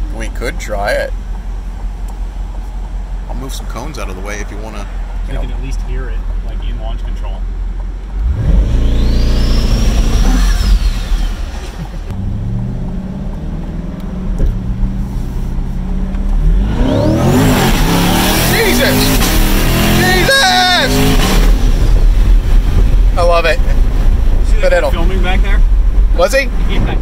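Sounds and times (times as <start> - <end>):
car engine at full throttle: 0.0 - 27.0.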